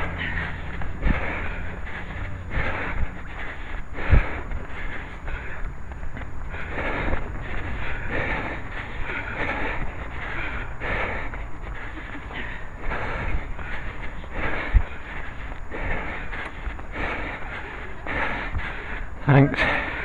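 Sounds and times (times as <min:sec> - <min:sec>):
heavy breathing: 0:00.0 - 0:20.0
wind buffeting microphone: 0:00.0 - 0:20.0.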